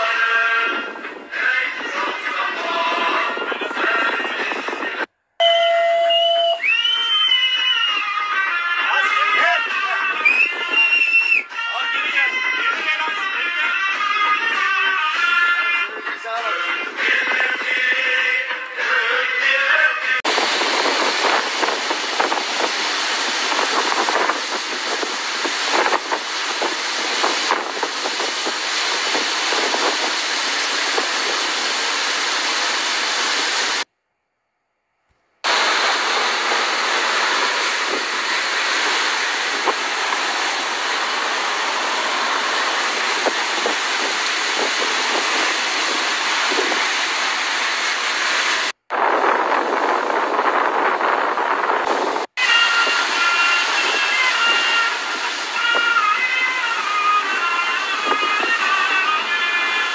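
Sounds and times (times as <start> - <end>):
wind rushing: 0.6 - 5.1, 20.2 - 33.9, 35.5 - 58.6
churning wake water: 20.3 - 33.8, 35.5 - 48.9, 51.9 - 59.9.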